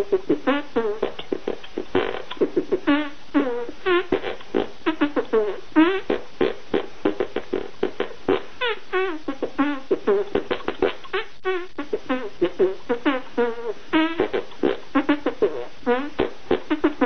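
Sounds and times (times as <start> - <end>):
hand beatbox squelching pops: 0.0 - 17.0.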